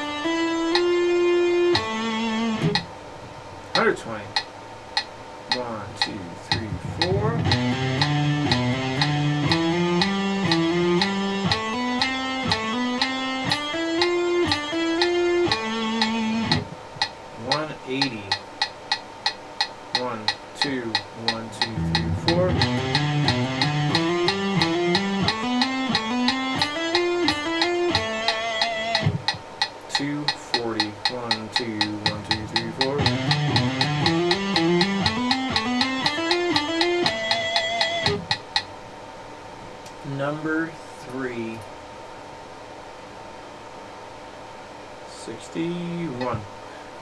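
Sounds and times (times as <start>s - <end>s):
electric guitar single notes: 0.0s - 2.9s, 6.5s - 16.8s, 21.6s - 29.4s, 32.0s - 38.5s
metronome clicking: 0.0s - 2.9s, 4.4s - 38.7s.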